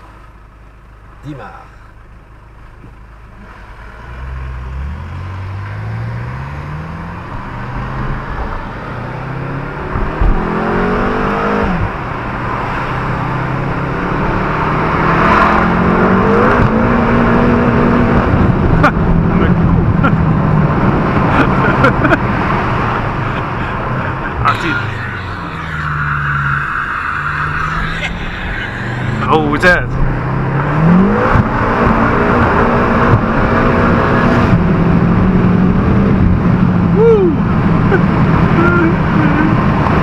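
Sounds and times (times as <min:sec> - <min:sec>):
car engine accelerating: 0:02.0 - 0:40.0.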